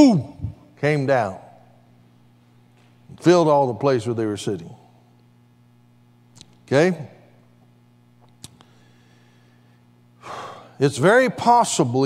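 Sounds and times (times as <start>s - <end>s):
man speaking: 0.0s - 1.6s, 6.7s - 7.2s
steady low hum: 0.0s - 12.0s
man breathing in: 8.6s - 10.8s.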